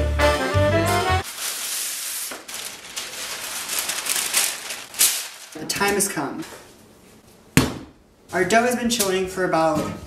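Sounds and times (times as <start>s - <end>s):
background music: 0.0s - 1.2s
baking paper crinkling and rustling: 1.2s - 6.5s.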